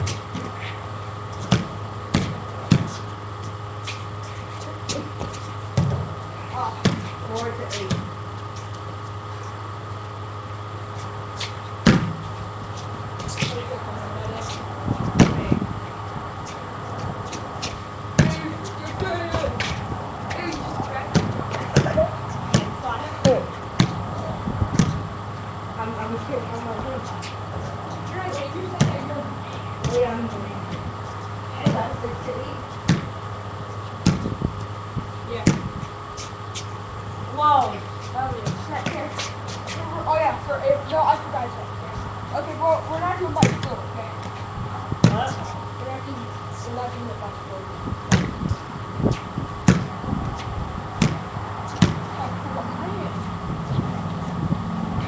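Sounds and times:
small ball bouncing on hard ground: 32.8s - 33.1s, 35.4s - 35.7s.

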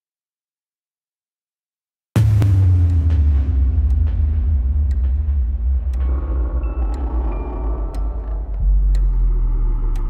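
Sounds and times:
deep rumbling drone: 2.4s - 10.0s
soft ticks: 5.9s - 10.0s.

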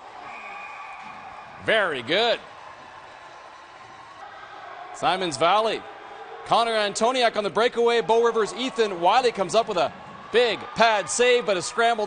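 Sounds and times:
ice arena background noise: 0.0s - 12.0s.

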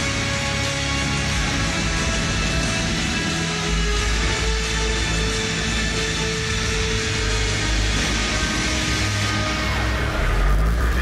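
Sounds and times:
hard rock music: 0.0s - 11.0s.

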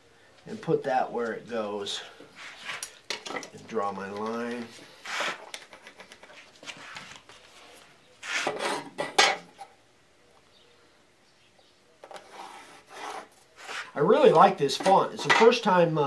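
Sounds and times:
steel rules sliding on wood: 1.8s - 3.0s, 4.2s - 5.5s, 6.6s - 8.9s, 12.0s - 15.6s
pencil scratching along metal: 12.2s - 13.9s.

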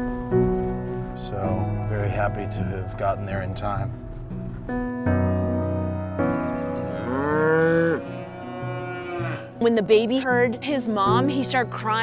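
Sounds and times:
background music: 0.0s - 12.0s
cow mooing: 6.2s - 9.7s.

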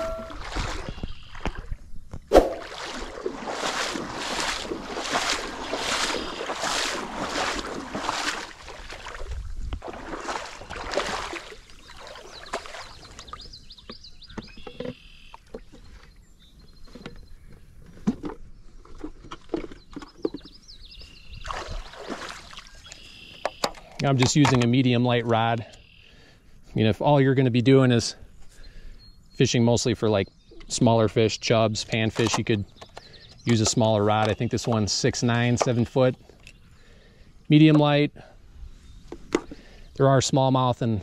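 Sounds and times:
water sounds: 0.0s - 16.1s, 21.1s - 23.4s
splashing steps in shallow water: 0.1s - 13.6s, 21.3s - 23.6s.

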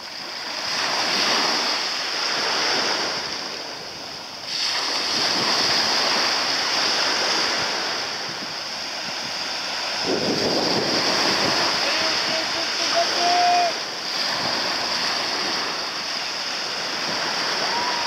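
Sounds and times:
sea waves washing: 0.0s - 18.0s
wind blowing over microphone: 0.0s - 18.0s.

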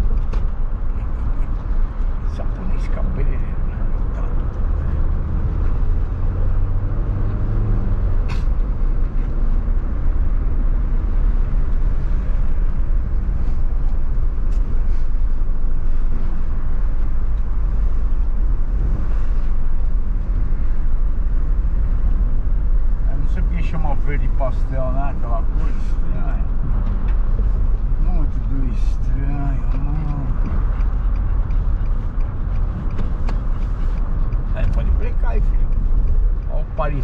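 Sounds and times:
car engine and tyre rumble: 0.0s - 37.0s
wind through open window: 0.0s - 37.0s.

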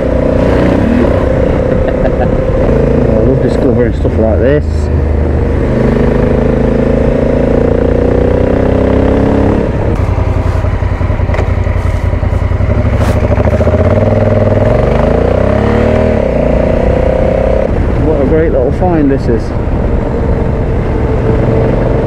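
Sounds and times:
motorcycle engine revving: 0.0s - 22.0s.

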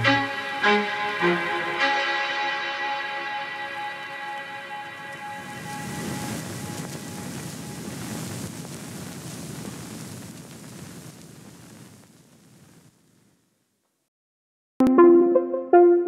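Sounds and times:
background music with held tones: 0.0s - 6.3s, 14.8s - 16.0s.

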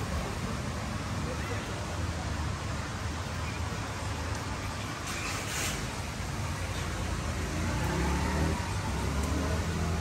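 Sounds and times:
faint indistinct voices: 0.0s - 5.8s.

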